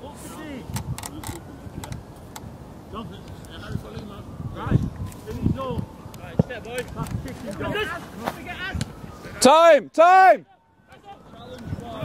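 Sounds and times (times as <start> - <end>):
players shouting and calling: 0.0 - 12.0.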